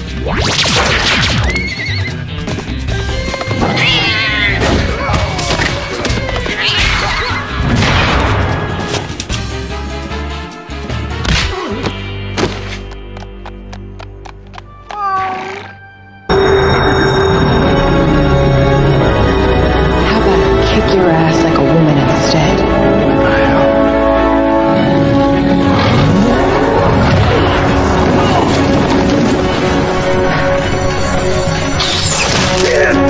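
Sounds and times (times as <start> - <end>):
action music: 0.0 - 14.8, 15.8 - 33.0
warbling energy blaster zap: 0.2 - 1.5.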